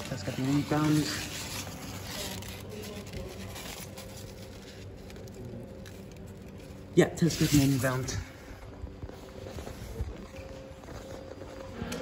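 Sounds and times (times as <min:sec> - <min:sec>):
faint rustling handling noise: 0:00.0 - 0:12.0
steady low hum: 0:00.0 - 0:12.0.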